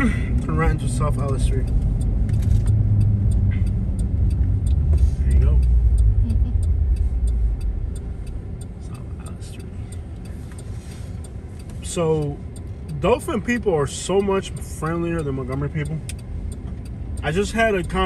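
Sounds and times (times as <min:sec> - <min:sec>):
engine and road rumble: 0:00.0 - 0:18.0
turn signal clicking: 0:00.3 - 0:18.0.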